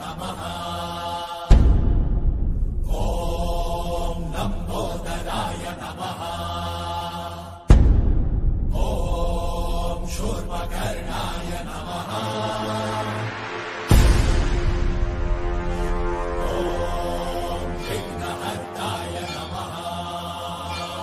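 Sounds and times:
sung chant tones: 0.0s - 1.6s, 15.2s - 21.0s
deep booming stroke: 1.5s - 4.5s, 7.7s - 11.7s.

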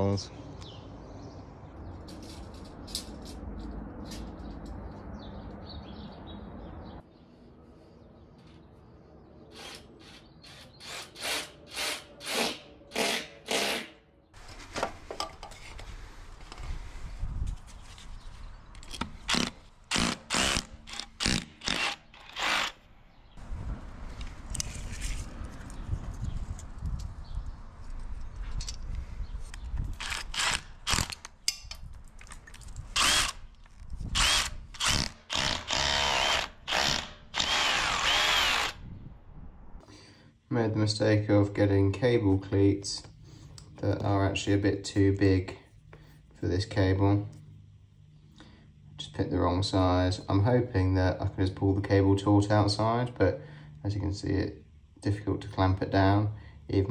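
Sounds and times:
cordless drill boring into wall: 19.3s - 22.8s, 33.0s - 33.4s, 34.2s - 38.8s.

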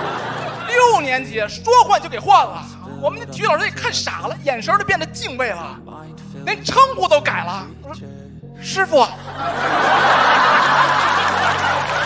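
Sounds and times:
audience laughing: 0.0s - 1.3s, 9.1s - 12.0s.

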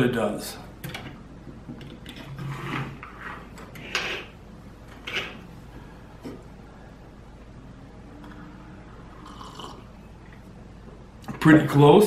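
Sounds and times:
low room noise: 0.0s - 12.0s
person slurping from mug: 9.1s - 9.9s.

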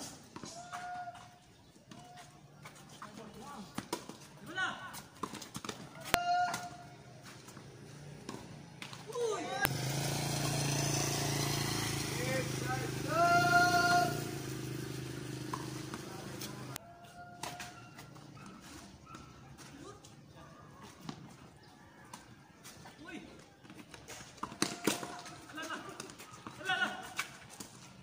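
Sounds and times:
players calling: 0.4s - 18.9s, 22.9s - 27.4s.

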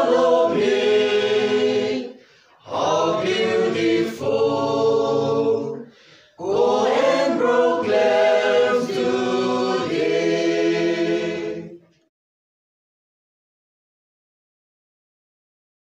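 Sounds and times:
choir singing: 0.0s - 11.9s.

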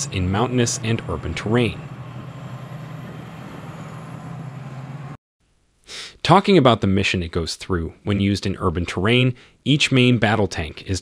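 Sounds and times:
tank diesel engines droning: 0.0s - 5.2s.

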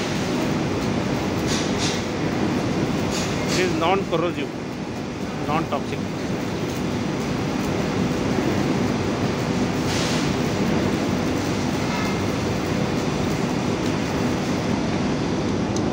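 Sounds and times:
heavy machinery rumbling: 0.0s - 15.2s.

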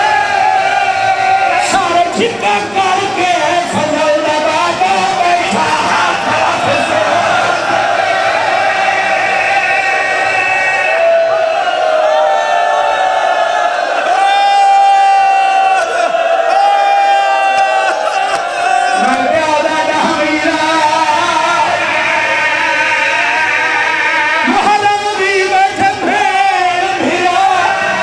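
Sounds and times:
men chanting together: 1.0s - 10.6s.

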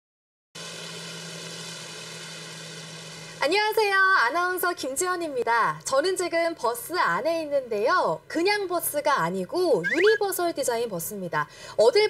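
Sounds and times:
electric bus whine: 0.6s - 3.4s
road noise: 0.6s - 3.5s.

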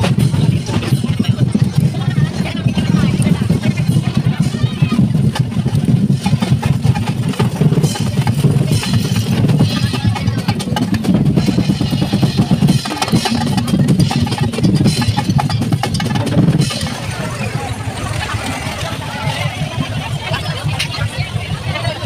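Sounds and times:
heavy drumming: 0.0s - 22.0s
loud crowd voices: 0.0s - 22.0s.

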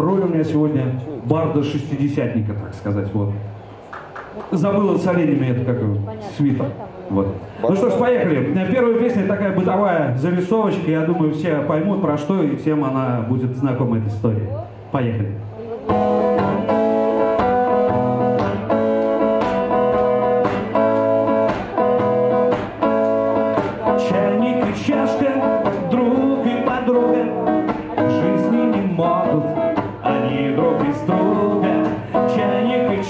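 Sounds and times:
electric guitar strumming chords: 15.8s - 33.0s.

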